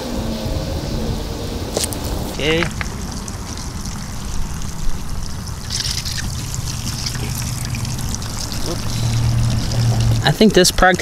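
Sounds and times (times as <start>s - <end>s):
water trickling into balloons: 1.6s - 11.0s.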